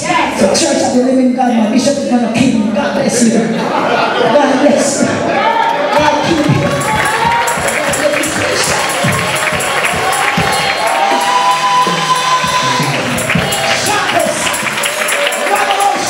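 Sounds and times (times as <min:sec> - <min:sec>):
rhythmic hand-clapping: 0:06.2 - 0:16.0
congregation singing praise song: 0:06.6 - 0:16.0.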